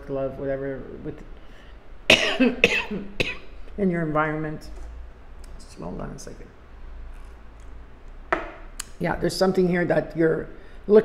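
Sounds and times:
paper cup knocking on wooden table: 8.3s - 8.6s.

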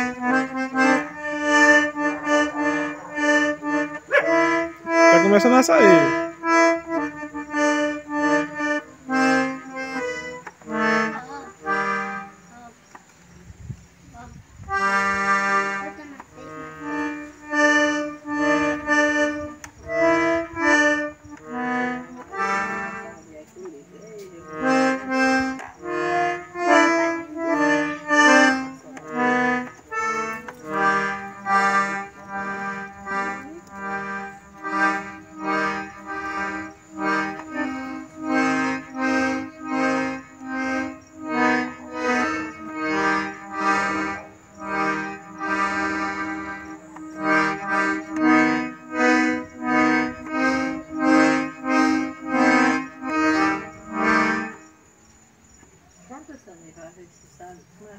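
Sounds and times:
accordion playing a tune: 0.0s - 13.6s, 14.2s - 54.9s.

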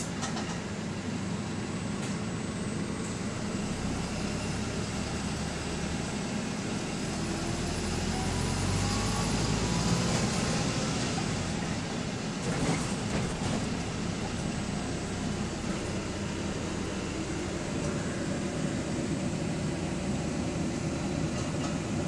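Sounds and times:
bus drivetrain and road drone: 0.0s - 22.0s.

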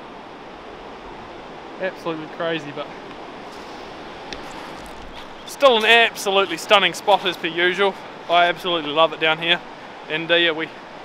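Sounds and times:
ocean surf breaking: 0.0s - 11.0s.

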